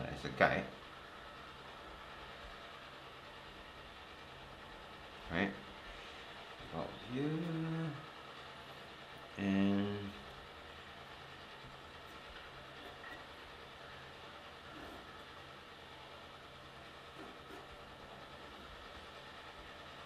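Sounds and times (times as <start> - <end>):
background hum and hiss: 0.0 - 20.0
pencil scratching on paper: 17.2 - 17.7.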